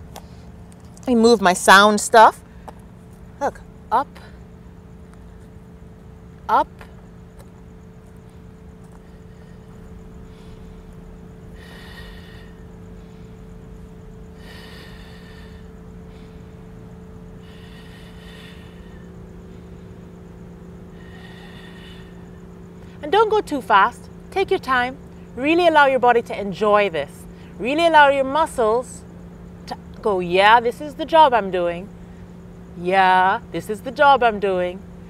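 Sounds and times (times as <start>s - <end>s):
low background hum: 0.0s - 35.0s.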